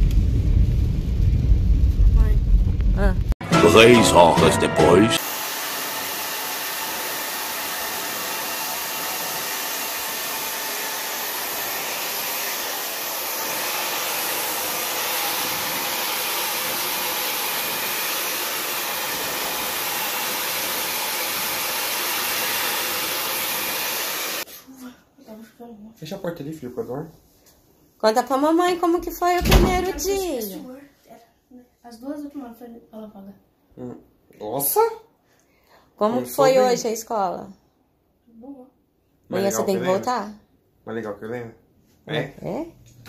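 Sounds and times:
hair dryer blowing: 0:05.2 - 0:24.5.

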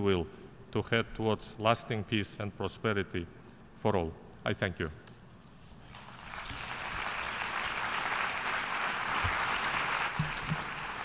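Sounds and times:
audience applause: 0:05.9 - 0:11.0.

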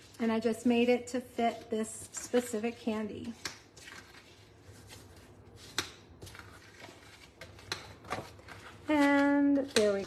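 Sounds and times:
paper rubbing and rustling: 0:03.2 - 0:10.0.

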